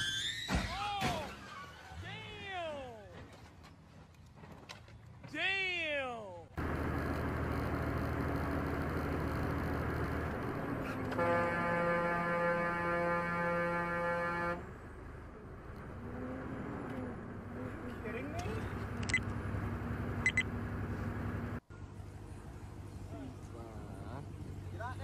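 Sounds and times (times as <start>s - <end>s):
truck road and engine noise: 6.5s - 25.0s
vehicle horn blast: 11.1s - 14.7s.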